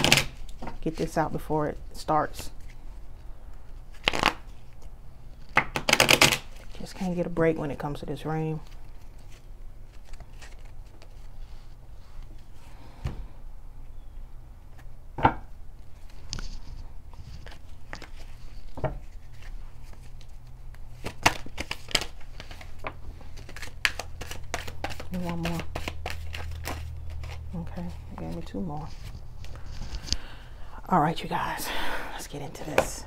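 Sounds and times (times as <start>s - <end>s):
cards being shuffled: 2.4s - 7.2s, 8.6s - 11.4s, 15.8s - 30.3s.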